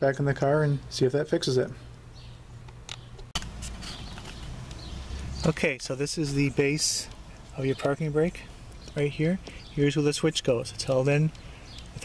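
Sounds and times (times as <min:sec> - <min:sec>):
steady low hum: 0:00.0 - 0:12.0
handling clicks and rustles: 0:02.6 - 0:09.7.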